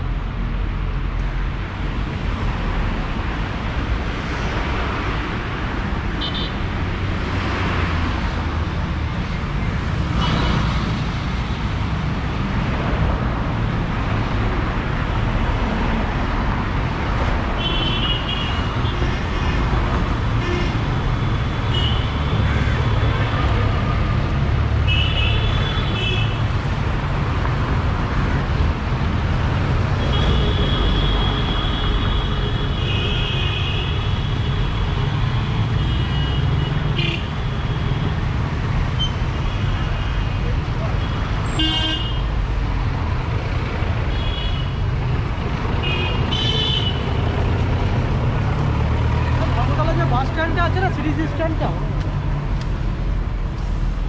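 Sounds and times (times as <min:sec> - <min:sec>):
traffic engines rumbling: 0:00.0 - 0:54.0.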